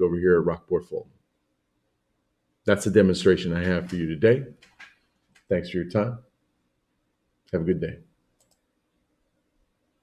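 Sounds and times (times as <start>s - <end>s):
faint short clicks: 8.4s - 8.6s.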